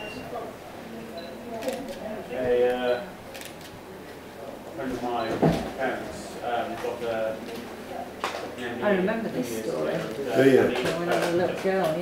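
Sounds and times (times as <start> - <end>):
quiet talking: 0.0 - 12.0.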